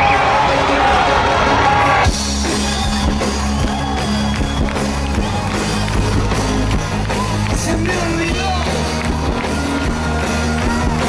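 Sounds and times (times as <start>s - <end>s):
loud crowd noise: 0.0s - 11.0s
pop-rock band playing live: 0.0s - 11.0s.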